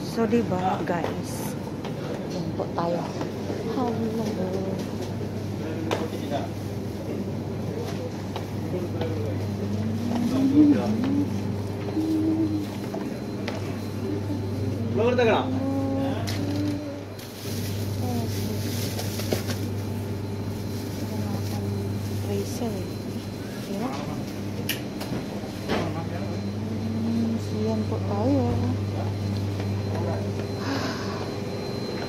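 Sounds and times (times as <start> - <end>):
indistinct voices: 0.0 - 19.2, 25.6 - 31.7
steady low hum: 0.0 - 32.0.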